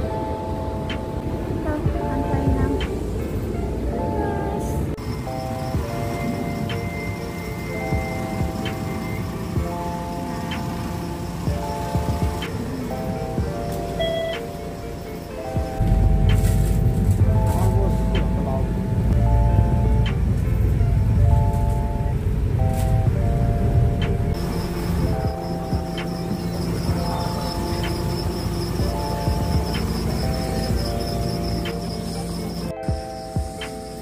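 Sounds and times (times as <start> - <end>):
background music melody: 0.0 - 34.0
road vehicle rumble: 0.0 - 34.0.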